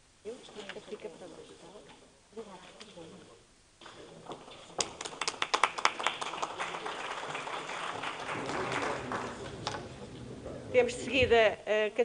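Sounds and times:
people clapping: 4.3s - 10.5s.

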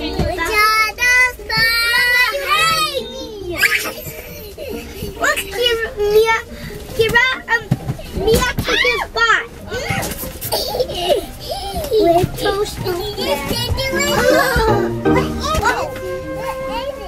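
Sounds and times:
young children chattering and squealing: 0.0s - 7.6s, 8.2s - 17.0s.

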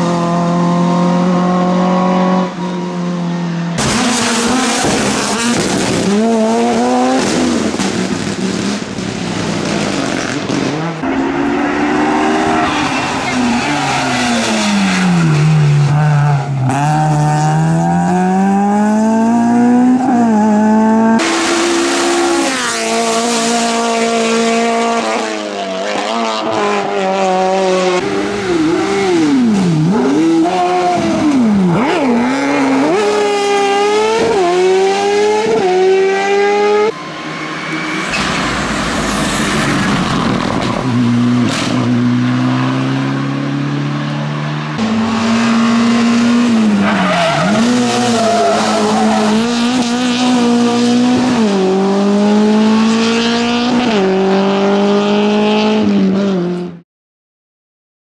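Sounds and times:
race car engines revving: 0.0s - 56.8s.

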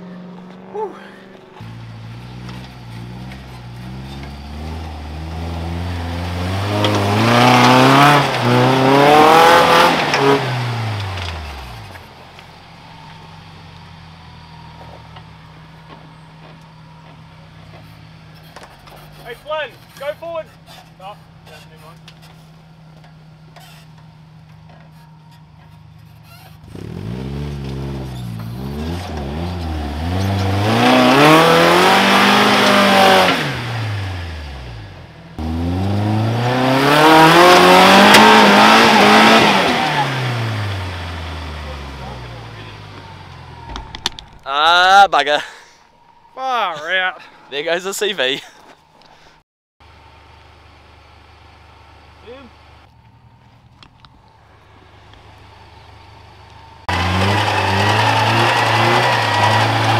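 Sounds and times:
car engine idling: 0.0s - 36.2s, 37.6s - 59.9s
car engine revving: 0.0s - 48.6s, 50.5s - 59.9s.

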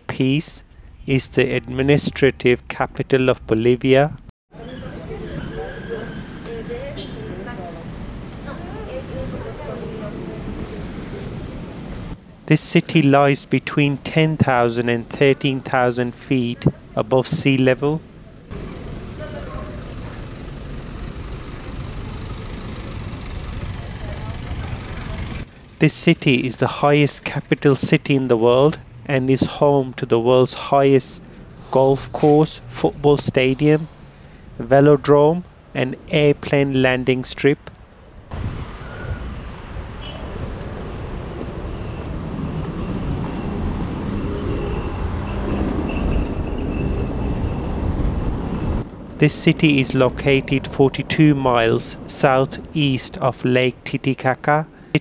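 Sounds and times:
rumble of car engines: 0.1s - 55.0s
faint voices of passers-by: 4.5s - 12.5s, 17.9s - 25.8s.

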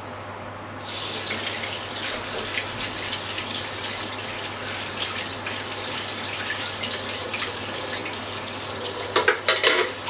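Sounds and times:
water running into sink: 0.8s - 10.0s.

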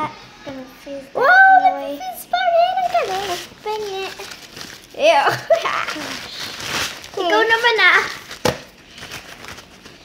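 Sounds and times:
wrapping rustling: 2.6s - 10.0s.

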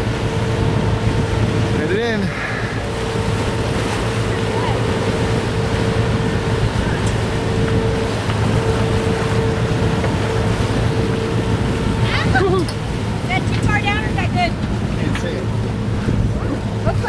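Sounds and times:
diesel engine humming: 0.0s - 17.0s
water rushing along hulls: 0.0s - 17.0s
wind on microphone: 0.0s - 17.0s.

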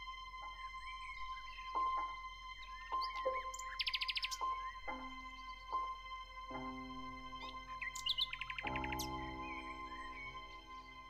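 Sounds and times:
gentle piano music: 0.0s - 11.0s
small birds chirping: 0.1s - 11.0s.

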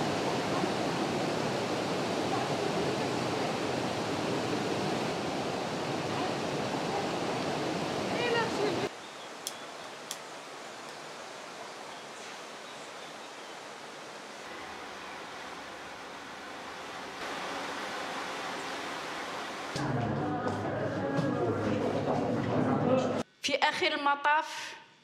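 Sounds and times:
voices: 0.0s - 5.1s, 5.7s - 8.9s.

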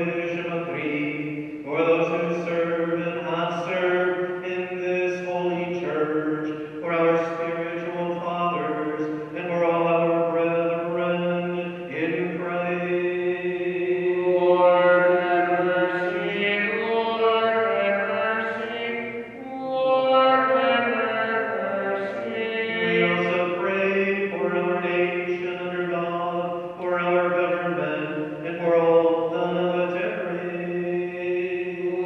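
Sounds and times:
person singing liturgical chant: 0.0s - 32.0s.

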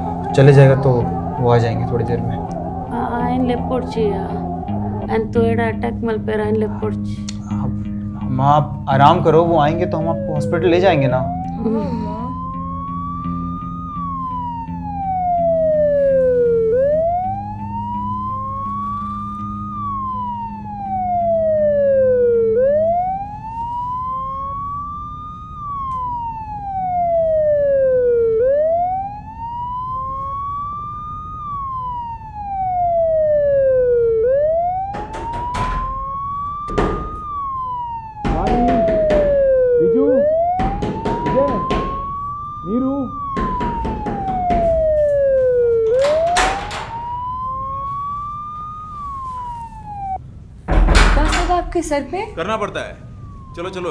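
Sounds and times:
wailing siren: 0.0s - 53.9s
loud bangs on a door: 34.9s - 37.3s, 38.2s - 39.5s, 40.5s - 42.2s, 43.2s - 44.9s, 46.0s - 47.0s, 50.7s - 51.9s.

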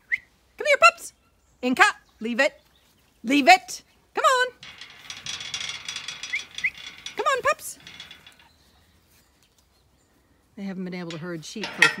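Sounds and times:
iron gate hinges creaking: 4.2s - 8.8s, 11.0s - 12.0s.

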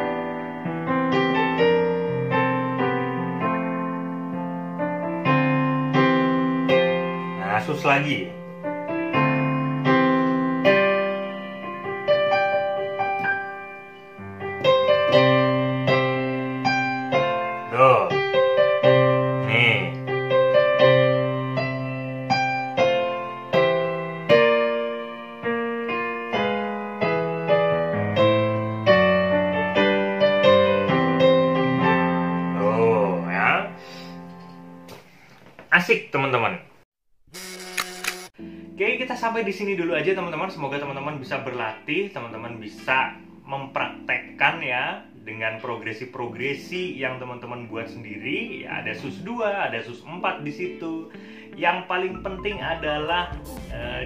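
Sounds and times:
piano chords: 0.0s - 34.9s, 38.3s - 54.0s.

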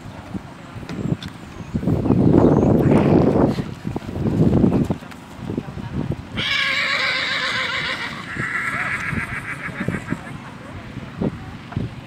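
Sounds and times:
horse whinnying: 6.4s - 10.2s.

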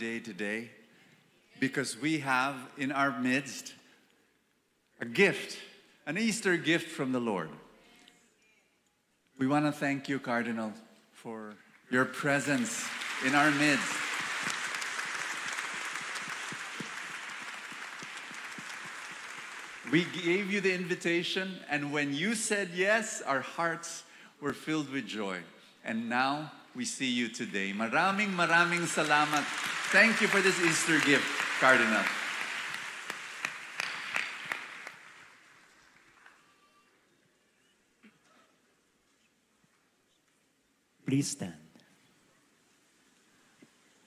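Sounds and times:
separate claps: 12.4s - 20.3s, 28.0s - 36.4s
crowd applause: 12.4s - 20.4s, 28.0s - 36.5s.

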